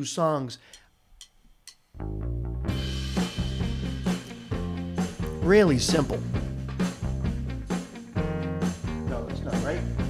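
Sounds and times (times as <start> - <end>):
bass and drums: 2.0 - 10.0
electric guitar chords: 2.0 - 10.0.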